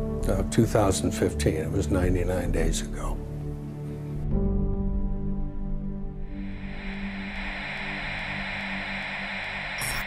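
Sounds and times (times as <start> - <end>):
low held music tone: 6.3 - 10.0
static-like hiss: 6.3 - 10.0.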